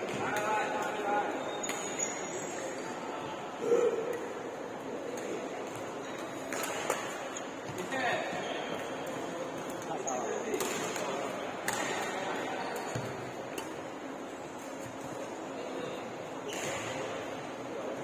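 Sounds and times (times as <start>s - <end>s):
rackets hitting shuttlecock: 10.5s - 12.2s.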